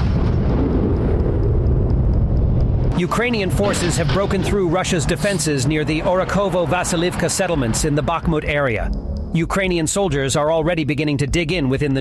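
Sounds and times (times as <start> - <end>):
tank engine rumbling: 0.0 - 10.0.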